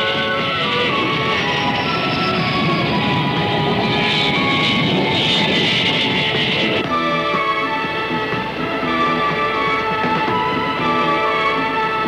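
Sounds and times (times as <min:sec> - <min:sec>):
jet engines whining: 0:00.0 - 0:12.0
music: 0:00.0 - 0:12.0.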